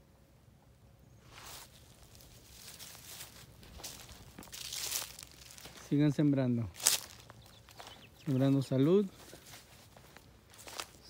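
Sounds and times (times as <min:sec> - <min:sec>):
footsteps through dry corn stalks: 0:01.2 - 0:11.0.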